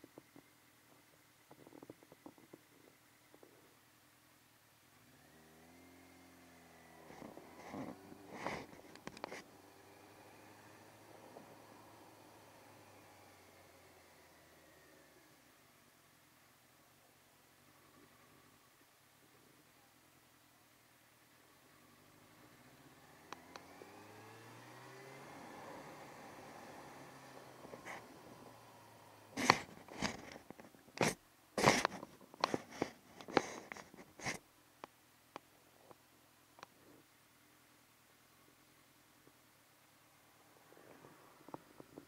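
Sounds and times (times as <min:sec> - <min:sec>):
faint motorcycle engine: 0:00.0 - 0:42.0.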